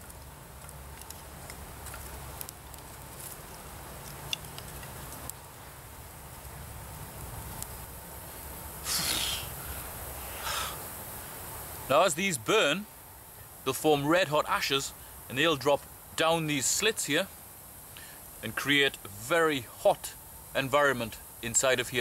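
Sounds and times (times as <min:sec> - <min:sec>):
fire crackling: 0:00.0 - 0:22.0
low steady hum: 0:00.0 - 0:22.0
person blowing into fire: 0:08.8 - 0:10.9.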